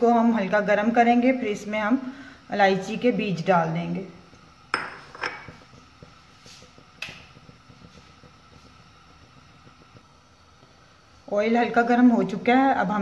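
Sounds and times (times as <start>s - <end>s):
kitchen background hum: 0.0s - 13.0s.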